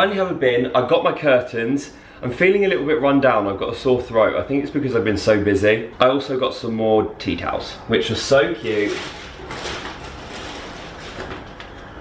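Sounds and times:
rustling and handling noise: 8.3 - 12.0.

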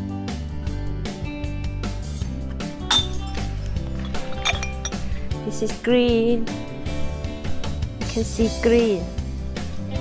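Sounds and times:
background music: 0.0 - 10.0
glass bottle clinking: 2.5 - 5.3.

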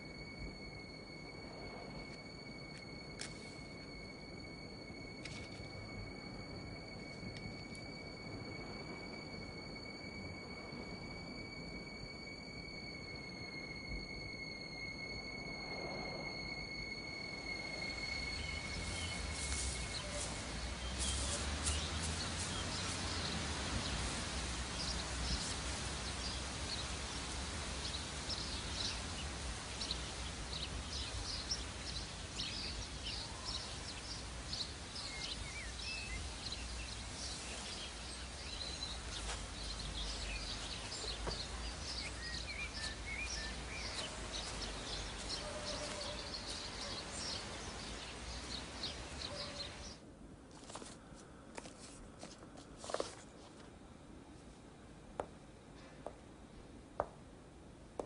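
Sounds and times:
songbirds chirping: 0.0 - 53.7
steady background hiss: 0.0 - 58.0.

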